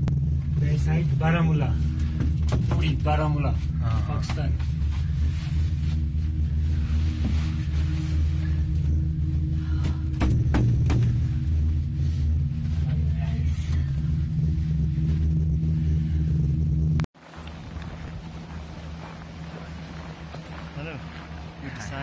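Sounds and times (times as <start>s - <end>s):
gondola cabin rumble: 0.0s - 22.0s.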